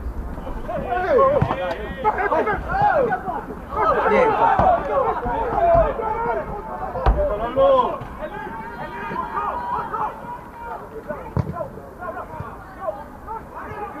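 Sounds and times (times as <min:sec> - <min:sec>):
players and spectators shouting: 0:00.3 - 0:14.0.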